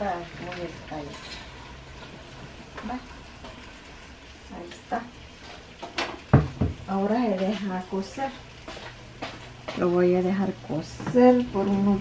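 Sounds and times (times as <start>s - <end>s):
dull heavy thumps: 6.3s - 6.9s.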